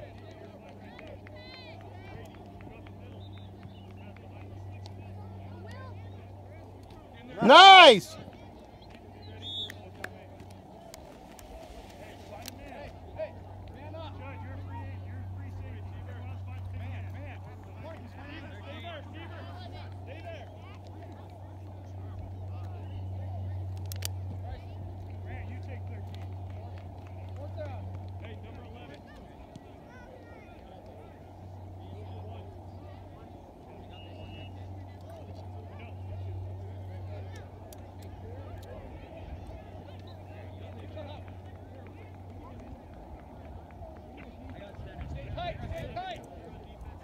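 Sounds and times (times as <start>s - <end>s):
faint distant voices: 0.0s - 47.0s
steady low hum: 8.1s - 47.0s.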